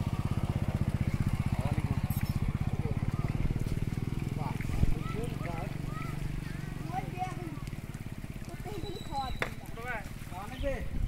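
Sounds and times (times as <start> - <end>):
small engine running: 0.0 - 10.5.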